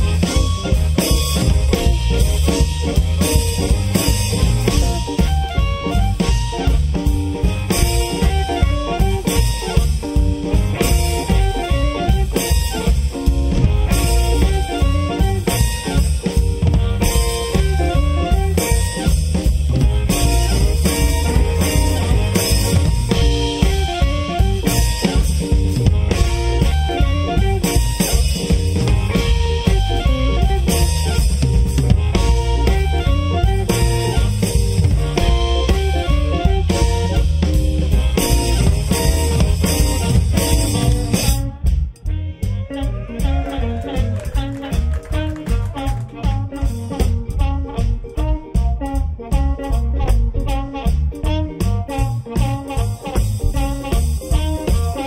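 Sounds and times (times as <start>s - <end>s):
bass guitar: 0.0s - 55.0s
blues harmonica solo: 0.0s - 55.0s
drum kit: 0.0s - 55.0s
electric guitar: 0.0s - 55.0s.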